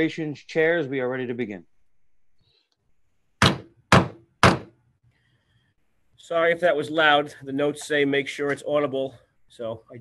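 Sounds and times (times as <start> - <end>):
wooden gavel strikes: 3.4 - 4.8.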